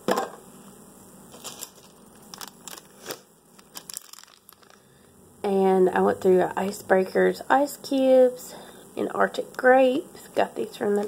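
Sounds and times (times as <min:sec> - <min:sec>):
plastic packaging crinkling: 0:01.3 - 0:04.9.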